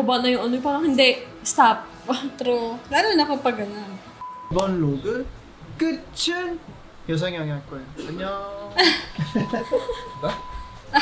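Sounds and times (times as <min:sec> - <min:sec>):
man talking: 0:04.5 - 0:08.8
thin steady tone: 0:08.0 - 0:11.0.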